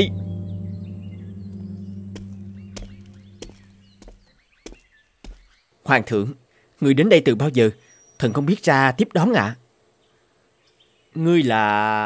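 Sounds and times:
gong low hum: 0.0s - 4.0s
birds chirping: 0.0s - 6.7s, 7.6s - 8.8s.

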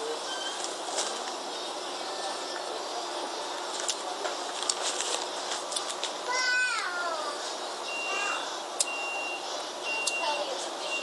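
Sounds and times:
faint high beep: 7.9s - 11.0s.

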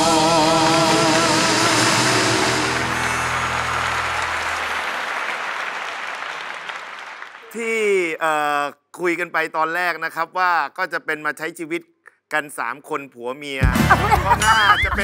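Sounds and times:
studio applause: 0.0s - 8.2s, 13.8s - 15.0s
man speaking: 7.4s - 15.0s.

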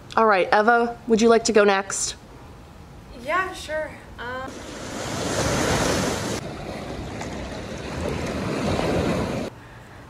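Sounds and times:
ocean surf washing onto beach: 4.5s - 9.5s
wind on microphone: 4.5s - 9.5s.

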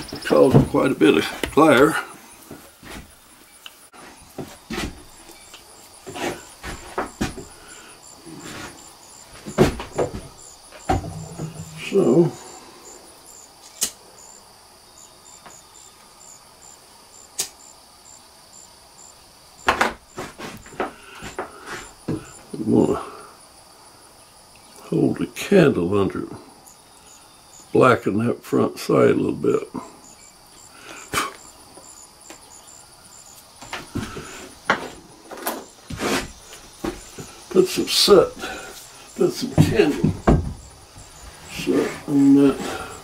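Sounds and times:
crickets chirping: 0.0s - 43.0s.

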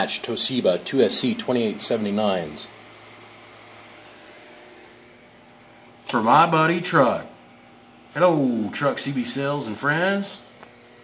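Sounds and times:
cooling fan whirring hiss: 0.0s - 11.0s.

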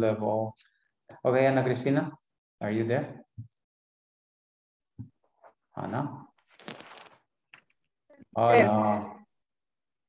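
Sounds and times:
man speaking: 8.4s - 9.2s.

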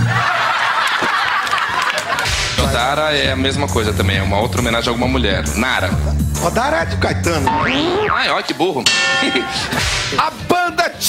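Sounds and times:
people laughing: 0.0s - 2.8s.

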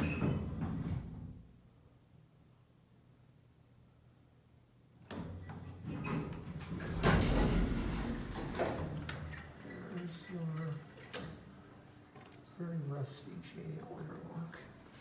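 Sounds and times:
elevator doors sliding: 5.3s - 11.6s.

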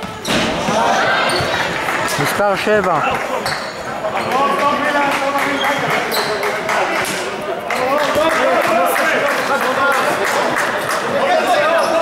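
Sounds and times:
voices in sports hall: 0.0s - 12.0s.

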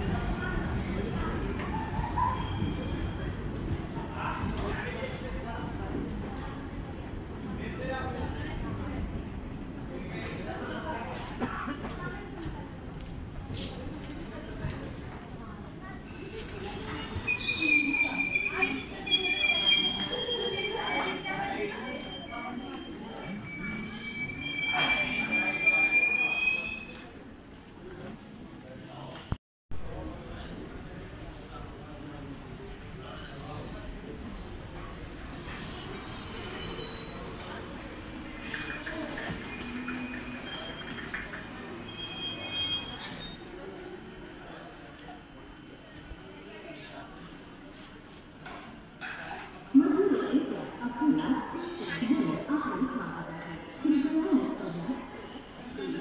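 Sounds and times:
train coaches rolling past: 0.0s - 28.2s, 30.1s - 56.0s
train coaches rolling: 16.0s - 27.3s, 34.3s - 49.4s
metallic squealing of wheels: 16.1s - 27.0s, 35.3s - 43.7s.

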